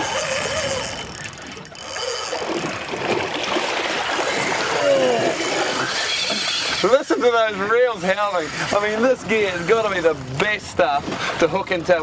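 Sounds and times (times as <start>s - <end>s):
fishing reel drag whining: 0.0s - 2.9s, 4.1s - 10.4s.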